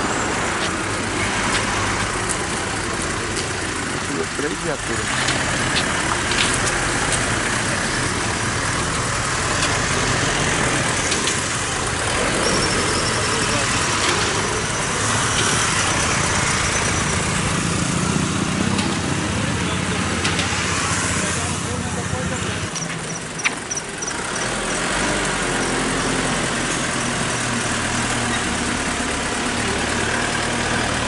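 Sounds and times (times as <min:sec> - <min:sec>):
indistinct voices: 0:00.0 - 0:17.6
street noise: 0:00.0 - 0:31.0
vehicle engine running: 0:00.0 - 0:31.0.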